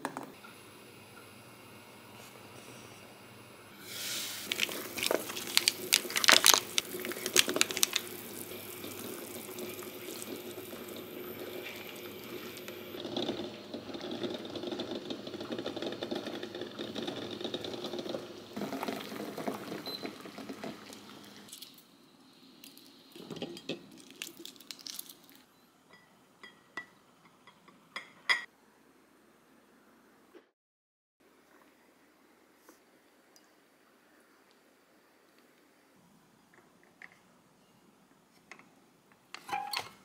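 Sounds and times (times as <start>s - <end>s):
liquid simmering hiss: 0.4s - 25.4s
blocks plopping into liquid: 4.5s - 8.2s.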